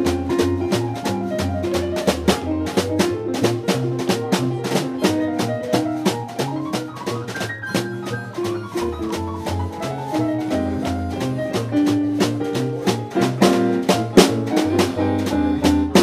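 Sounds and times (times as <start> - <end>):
low bass notes: 0.0 - 6.6, 8.4 - 16.0
drums played with sticks: 0.0 - 16.0
stage piano chords and runs: 0.0 - 16.0.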